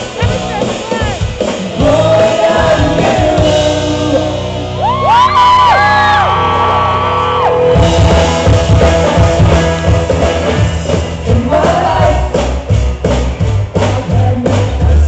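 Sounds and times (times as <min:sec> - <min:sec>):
sung vocals: 0:00.0 - 0:05.4, 0:07.8 - 0:12.8, 0:13.7 - 0:15.0
live rock band playing: 0:00.0 - 0:15.0.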